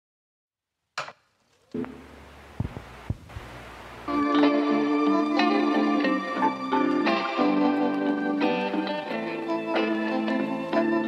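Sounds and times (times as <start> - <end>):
deep thumps: 1.8 - 3.5.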